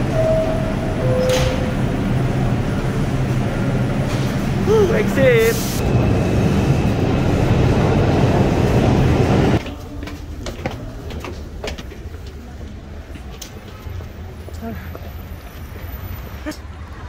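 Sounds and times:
street noise: 0:00.0 - 0:17.0
subway train rumbling: 0:00.0 - 0:17.0.

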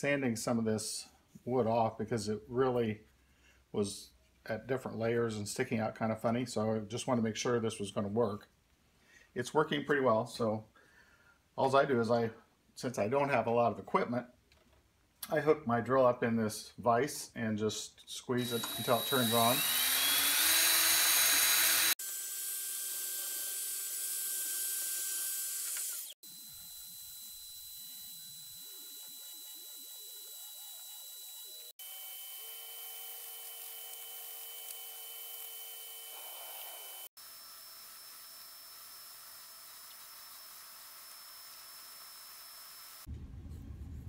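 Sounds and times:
drill motor whine: 0:18.4 - 0:43.1
sanding wood: 0:28.6 - 0:31.7.

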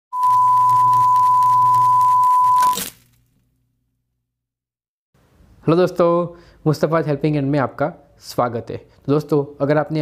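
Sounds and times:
steady high-pitched beep: 0:00.1 - 0:02.8
crackling static: 0:00.1 - 0:03.0.

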